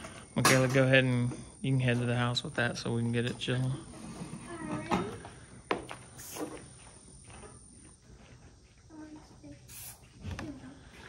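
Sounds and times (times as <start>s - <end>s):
spray bottle squirts: 6.1s - 6.6s, 9.7s - 10.2s.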